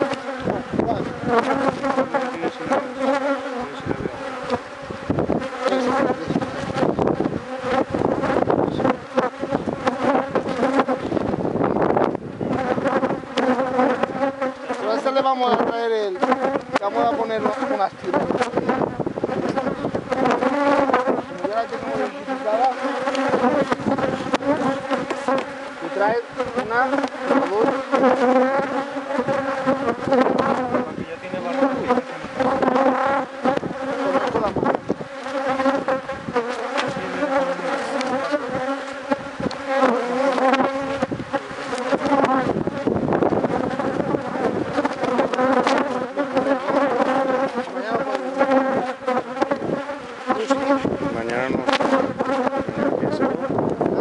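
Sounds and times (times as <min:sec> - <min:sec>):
honeybees buzzing: 0:00.0 - 0:54.0.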